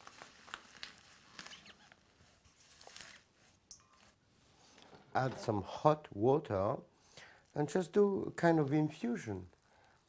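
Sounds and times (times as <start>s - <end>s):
leaves rustling and crackling: 0.0s - 4.1s.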